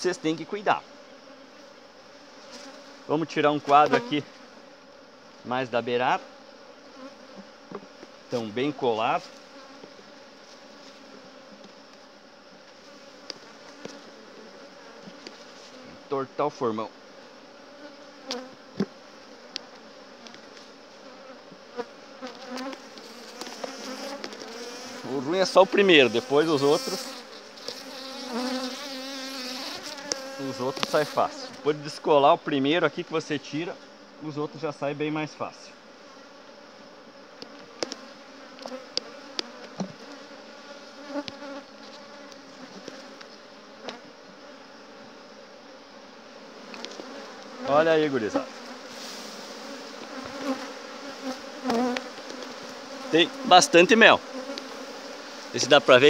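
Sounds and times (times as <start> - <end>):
honeybees buzzing: 0.0 - 56.0
hive tool clicks and cracks: 30.0 - 31.0, 37.4 - 39.9, 46.7 - 47.5.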